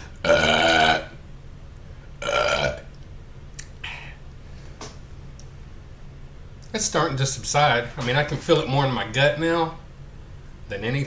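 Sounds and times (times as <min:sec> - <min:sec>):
man burping: 0:00.2 - 0:01.2, 0:02.2 - 0:02.9.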